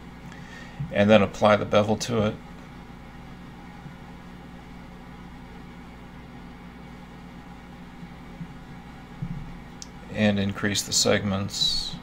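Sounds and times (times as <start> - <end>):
low room tone hum: 0.0 - 12.0.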